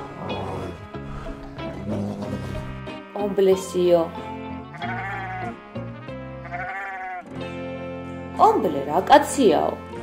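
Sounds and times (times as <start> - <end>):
background music: 0.0 - 10.0
sheep bleating: 4.6 - 7.4.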